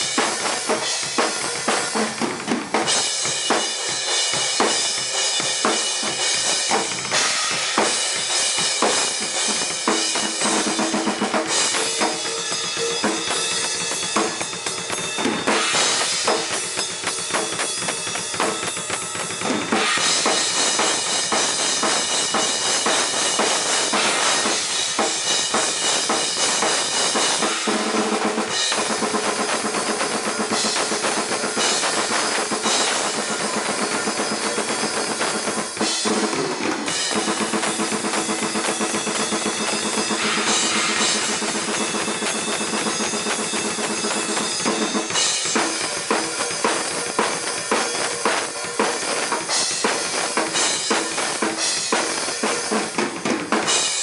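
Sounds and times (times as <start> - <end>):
fast metal drumming: 0.0 - 54.0
cymbals washing: 2.8 - 53.0.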